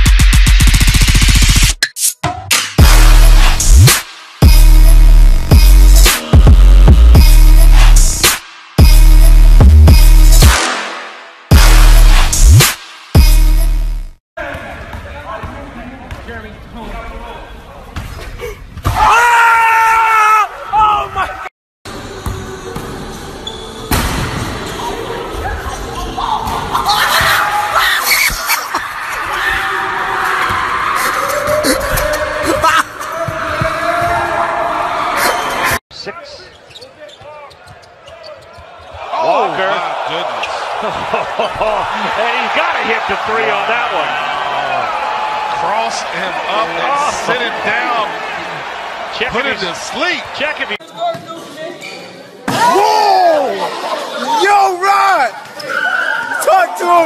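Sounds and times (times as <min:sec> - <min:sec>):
shoe squeaks: 0:23.4 - 0:23.9, 0:36.1 - 0:39.0, 0:50.8 - 0:52.4
arena crowd noise: 0:24.5 - 0:57.0.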